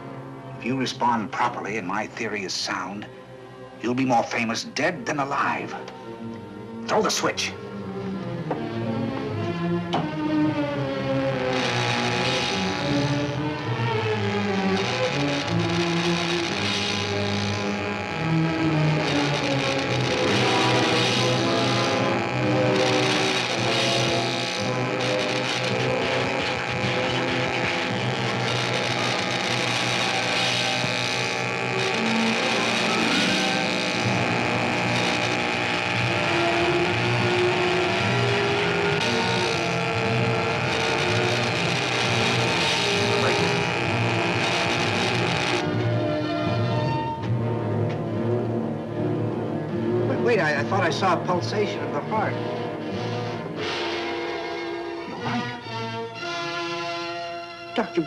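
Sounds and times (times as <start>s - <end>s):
buzzing crackling electrical discharge: 10.9s - 45.8s.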